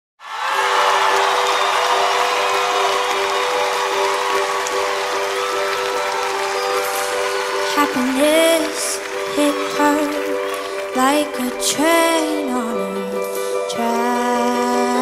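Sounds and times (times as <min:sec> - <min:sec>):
audience cheering: 0:00.2 - 0:15.0.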